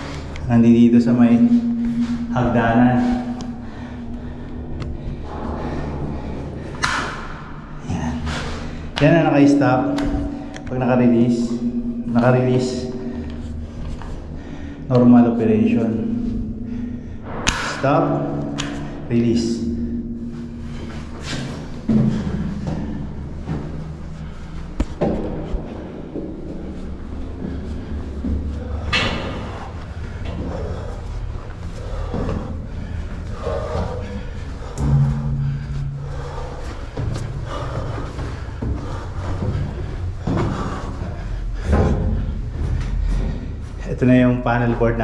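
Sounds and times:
footsteps on steel ladder: 0.0 - 45.0
steady low hum: 0.0 - 45.0.

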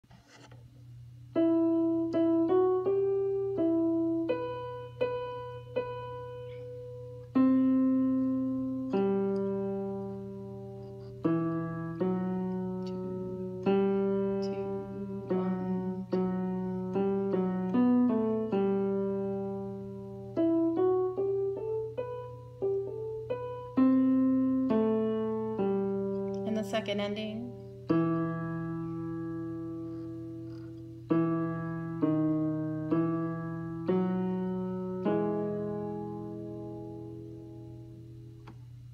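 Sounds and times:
steady low hum: 0.1 - 38.9
piano notes played slowly: 1.0 - 38.9.

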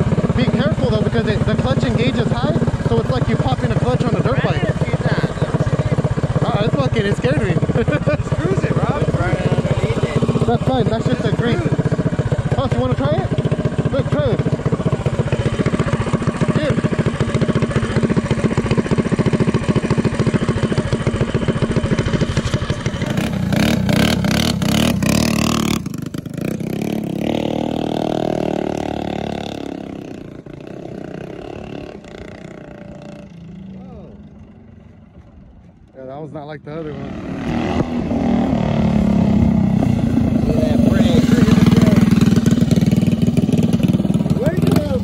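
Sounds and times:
minibike engine running and revving: 0.0 - 45.0.

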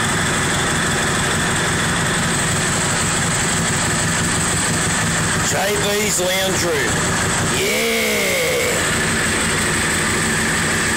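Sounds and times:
motorcycle engines idling: 0.0 - 10.9.

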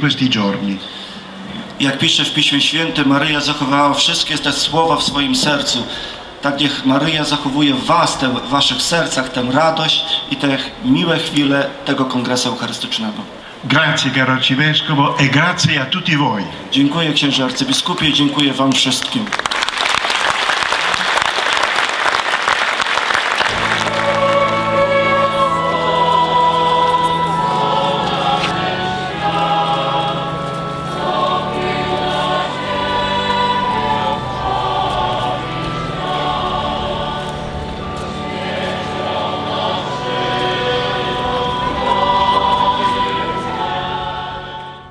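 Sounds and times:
choir singing a slow hymn: 1.1 - 12.7, 23.4 - 44.9
applause: 18.9 - 24.7
low accompaniment: 23.4 - 44.9.

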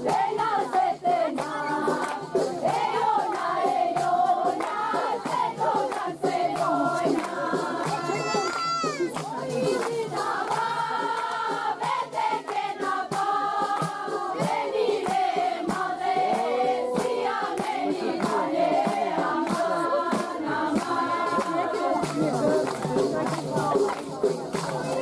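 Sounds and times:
group of voices singing: 0.0 - 25.0.

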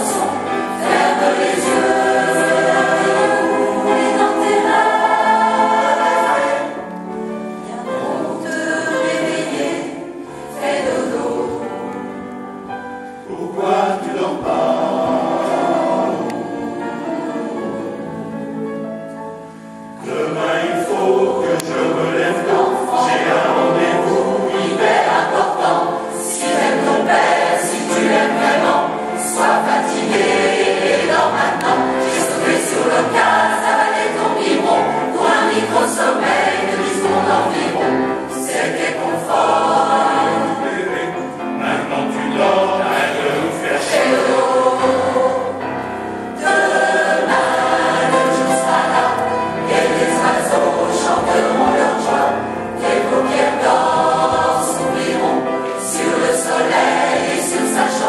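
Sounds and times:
choir singing a lullaby: 0.0 - 58.0.

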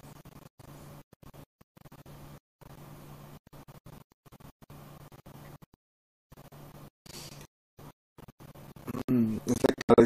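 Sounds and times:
low electrical hum: 0.0 - 5.7, 6.3 - 10.0.

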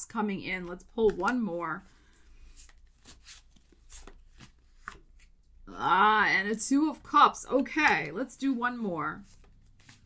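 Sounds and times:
cards shuffled by hand: 0.8 - 5.5, 9.2 - 10.0.

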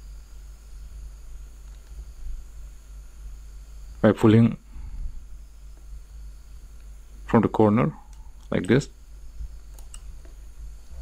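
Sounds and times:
low background hum: 0.0 - 11.0
computer mouse clicks: 1.6 - 2.0, 9.6 - 10.4.

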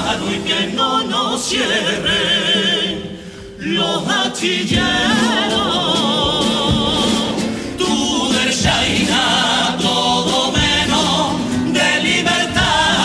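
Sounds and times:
male chorus singing in harmony: 0.0 - 13.0
singers breathing: 3.0 - 3.6, 7.4 - 7.8
rhythmic accompaniment: 3.8 - 13.0.

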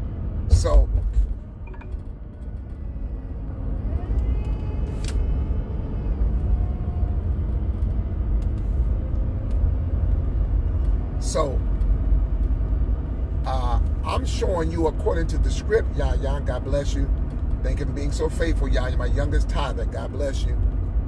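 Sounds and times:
road and engine rumble in car: 0.0 - 21.0.

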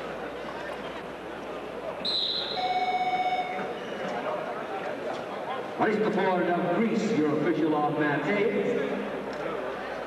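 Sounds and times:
arena crowd murmur: 0.0 - 10.0
shrill high tone: 2.5 - 3.6.

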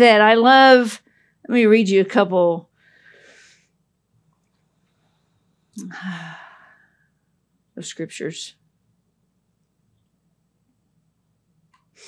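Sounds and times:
person sighing: 5.8 - 6.8.

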